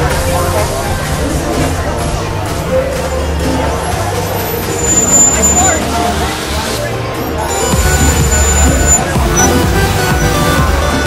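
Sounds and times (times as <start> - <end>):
crowd chatter: 0.0 - 11.0
music with low bass: 0.0 - 11.0
thin high-pitched squeal: 4.4 - 6.0.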